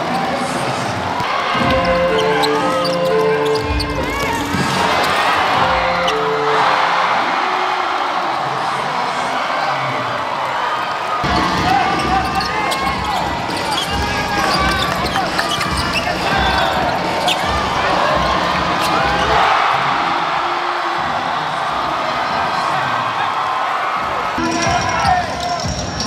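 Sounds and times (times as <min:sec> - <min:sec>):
arena crowd: 0:00.0 - 0:26.0
sneakers squeaking: 0:01.2 - 0:07.1, 0:11.2 - 0:19.8.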